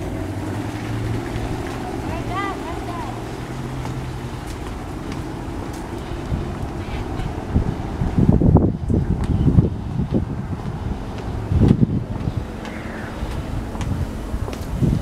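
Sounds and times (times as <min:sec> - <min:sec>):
engine droning low: 0:00.0 - 0:15.0.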